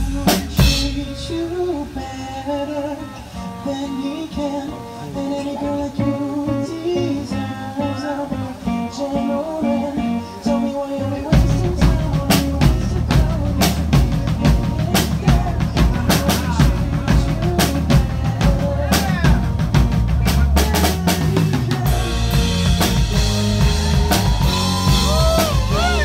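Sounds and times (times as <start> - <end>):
drum kit beat: 0.0 - 1.4, 11.3 - 26.0
low bass line: 0.0 - 2.0, 11.3 - 26.0
live band playing: 0.0 - 26.0
high sliding notes: 21.9 - 26.0.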